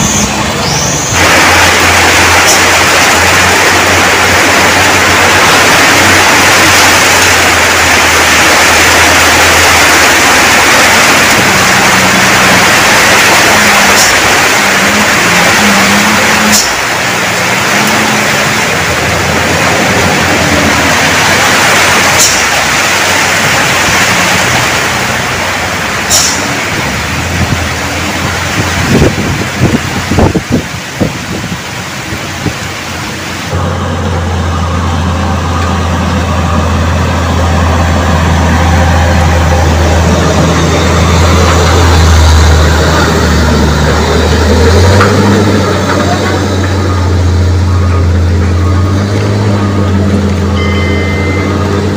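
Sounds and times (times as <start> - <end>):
road noise: 0.0 - 51.9
truck engine droning: 0.0 - 51.9.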